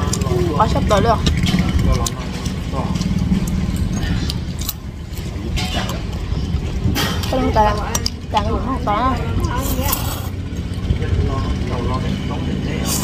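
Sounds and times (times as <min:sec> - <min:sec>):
utensils clinking against bowls: 0:00.0 - 0:10.8
steady low rumble: 0:00.0 - 0:13.0.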